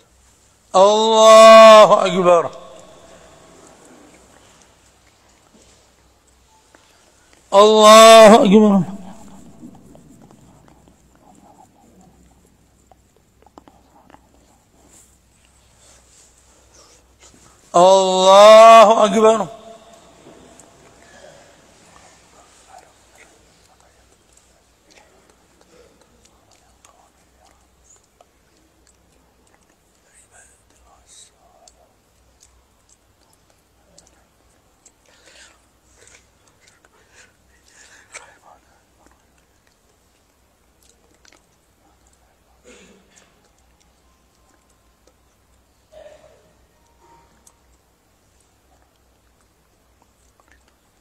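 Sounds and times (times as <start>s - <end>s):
amplified voice echo: 0.8s - 3.8s, 7.5s - 10.8s, 17.8s - 20.9s
low steady hum: 2.2s - 17.8s
whispered murmuring of congregation: 8.5s - 17.7s, 19.9s - 40.2s, 41.0s - 43.4s
faint rustling of congregation: 20.0s - 28.5s
small clicks and rustles: 46.9s - 51.0s.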